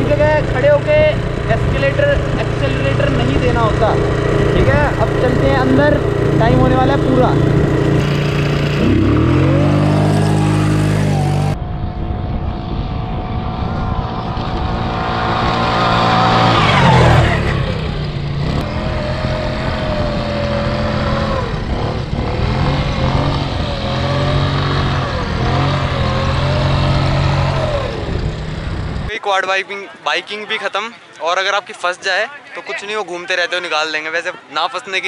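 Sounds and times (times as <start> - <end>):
quad bike engine revving: 0.0 - 29.1.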